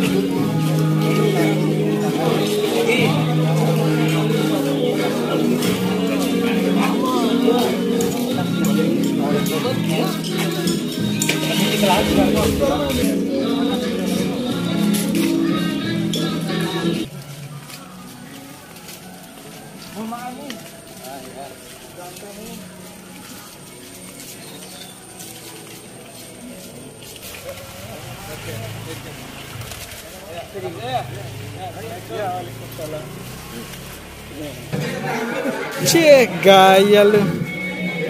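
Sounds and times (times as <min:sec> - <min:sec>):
music: 0:00.0 - 0:26.7, 0:34.7 - 0:38.0
distant indistinct voices: 0:00.0 - 0:38.0.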